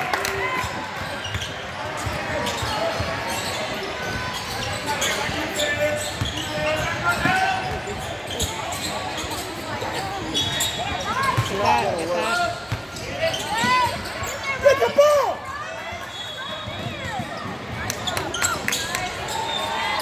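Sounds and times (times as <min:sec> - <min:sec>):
murmur of voices: 0:00.0 - 0:20.0.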